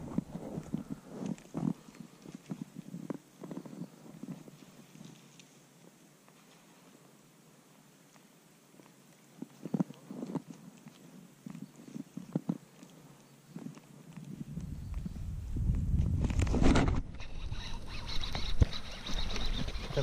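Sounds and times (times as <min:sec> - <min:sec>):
camera handling rumble: 0:13.6 - 0:20.0.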